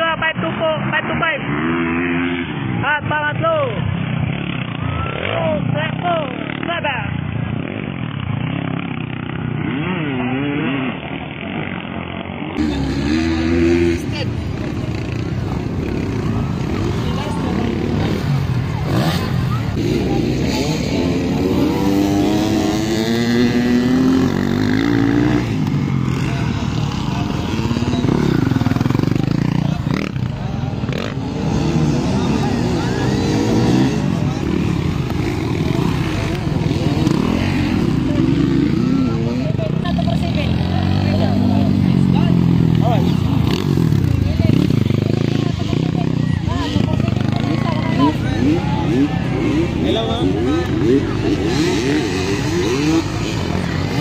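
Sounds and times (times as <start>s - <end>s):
dirt bike engines revving: 0.0s - 54.0s
voices: 0.0s - 54.0s.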